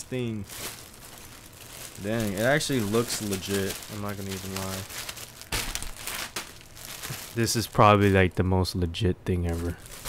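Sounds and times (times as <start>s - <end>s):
plastic packaging crinkling: 0.0s - 8.4s, 9.4s - 10.0s.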